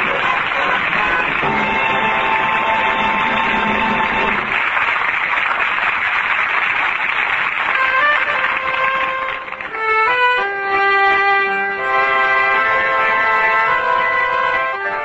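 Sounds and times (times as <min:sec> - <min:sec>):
band music on old radio: 0:00.0 - 0:04.6
stadium crowd cheering: 0:00.0 - 0:10.7.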